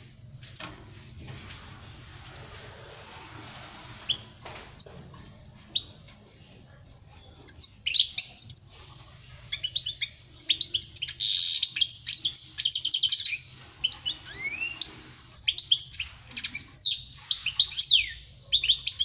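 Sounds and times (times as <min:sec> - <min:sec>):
finch song twittering: 0:07.0 - 0:08.7, 0:09.5 - 0:19.0.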